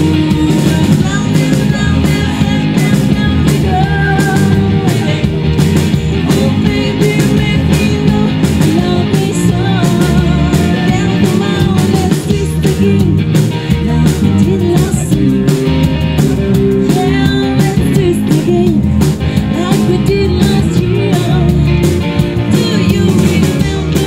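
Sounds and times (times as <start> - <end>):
woman singing: 0.0 - 15.7, 16.7 - 24.0
drum kit beat: 0.0 - 24.0
electric and acoustic guitars: 0.0 - 24.0
electric bass: 0.0 - 24.0.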